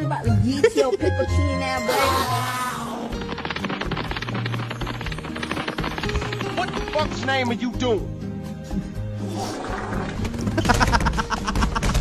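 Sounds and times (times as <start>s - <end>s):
music: 0.0s - 12.0s
man laughing: 10.6s - 12.0s.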